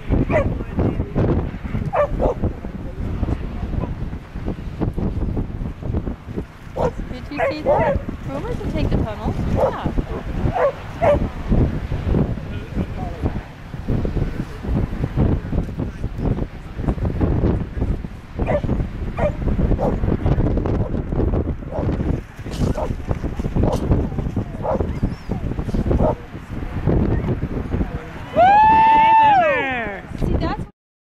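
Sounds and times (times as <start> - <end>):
wind rumble on microphone: 0.0 - 30.7
dog barking: 0.3 - 0.5, 1.9 - 2.4, 6.8 - 8.1, 9.6 - 9.8, 10.5 - 11.2, 18.4 - 20.0, 24.6 - 25.0, 26.0 - 26.2.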